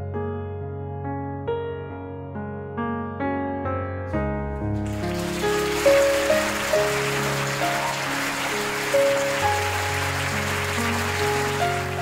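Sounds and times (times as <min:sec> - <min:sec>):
slow solo piano melody: 0:00.0 - 0:12.0
audience applause: 0:04.6 - 0:12.0.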